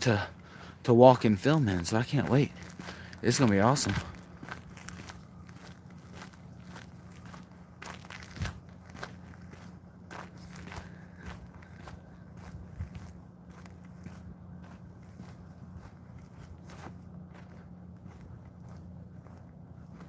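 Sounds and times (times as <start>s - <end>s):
faint low hum: 0.0s - 20.0s
footsteps on dirt: 0.0s - 20.0s.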